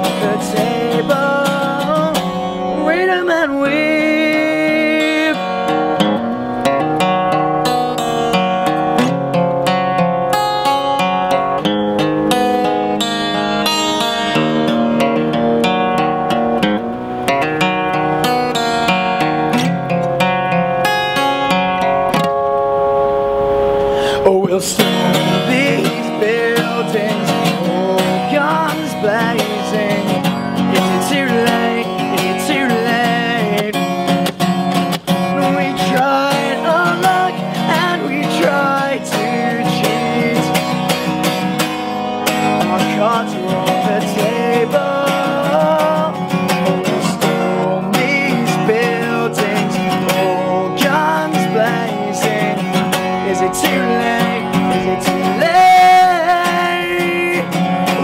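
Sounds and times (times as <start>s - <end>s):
man singing: 0.0s - 6.2s, 24.0s - 41.5s, 42.3s - 58.0s
acoustic guitar chords: 0.0s - 58.0s.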